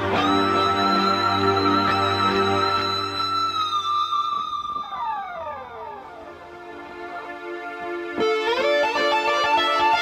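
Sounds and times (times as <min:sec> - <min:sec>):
electric guitar note sliding down: 0:00.0 - 0:06.6.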